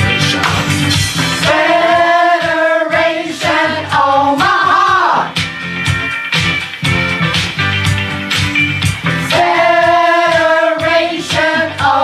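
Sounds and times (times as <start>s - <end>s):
upbeat pop backing track: 0.0s - 12.0s.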